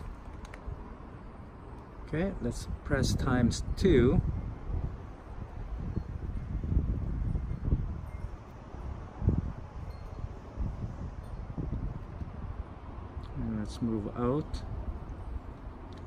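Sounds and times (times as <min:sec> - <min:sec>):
wind on microphone: 0:02.4 - 0:16.0.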